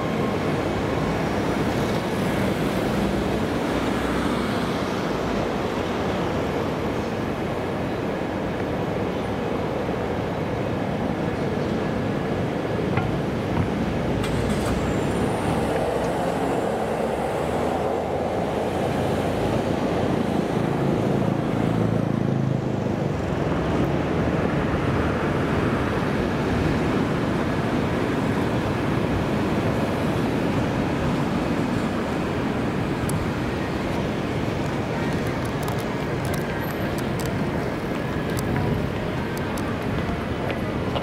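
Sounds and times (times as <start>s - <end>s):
deep traffic rumble: 0.0s - 41.0s
passing cars: 0.0s - 41.0s.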